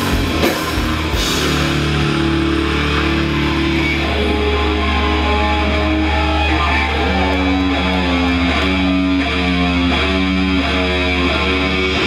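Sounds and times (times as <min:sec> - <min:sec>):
heavy metal guitars and bass chord: 0:00.0 - 0:12.0.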